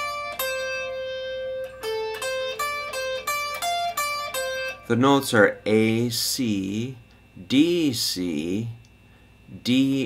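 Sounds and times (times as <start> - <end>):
electric guitar single notes: 0.0 - 6.2.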